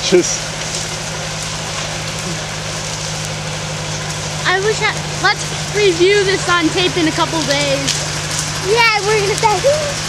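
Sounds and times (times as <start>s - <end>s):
engine idling: 0.0s - 10.0s
open fire crackling and hissing: 0.0s - 10.0s.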